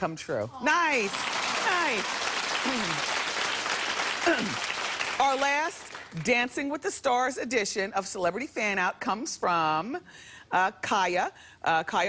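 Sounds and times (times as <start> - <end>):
audience applauding: 1.0 - 6.2.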